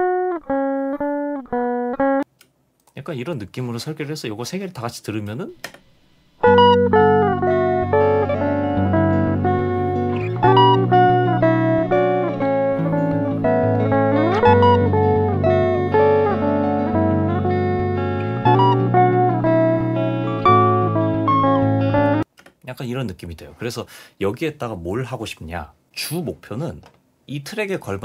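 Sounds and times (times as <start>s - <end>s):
guitar slide: 6.4s - 22.2s
layered electric guitars: 6.4s - 22.2s.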